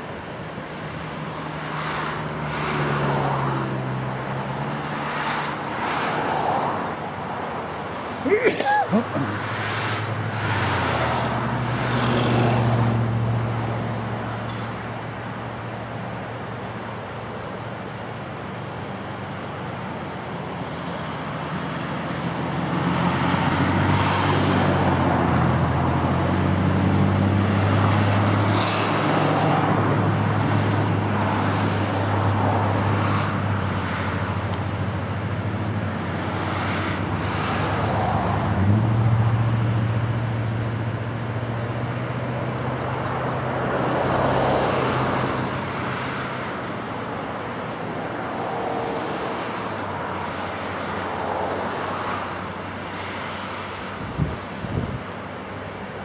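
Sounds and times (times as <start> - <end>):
locomotive engine drone: 0.0 - 56.0
rushing wash of noise: 0.0 - 56.0.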